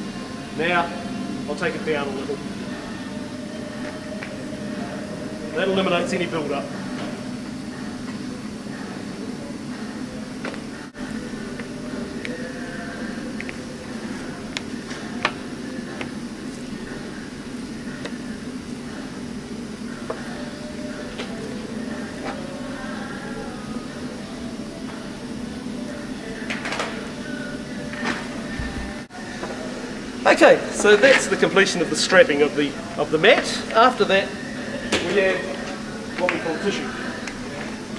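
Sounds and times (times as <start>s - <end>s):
low workshop hum: 0.0s - 37.9s.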